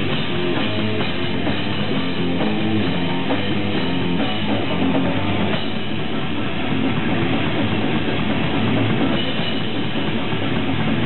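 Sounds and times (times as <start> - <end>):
distorted electric guitars: 0.0 - 11.0
drums: 0.0 - 11.0.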